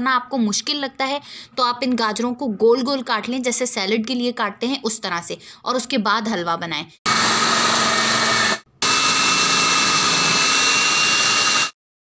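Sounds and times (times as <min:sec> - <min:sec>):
food processor motor chopping: 0:07.1 - 0:11.8.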